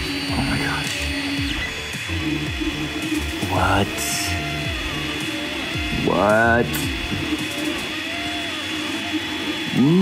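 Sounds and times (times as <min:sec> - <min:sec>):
cooling fans humming: 0:00.0 - 0:10.0
stepper motors whining: 0:00.0 - 0:10.0.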